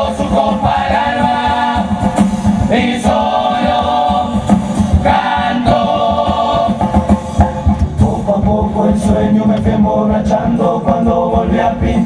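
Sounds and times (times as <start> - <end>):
chorus singing together: 0.0 - 12.0
percussion beat: 0.0 - 12.0.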